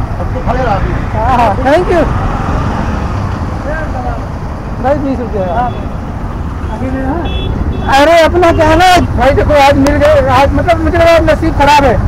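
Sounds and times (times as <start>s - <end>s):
roadside traffic noise: 0.0s - 12.0s.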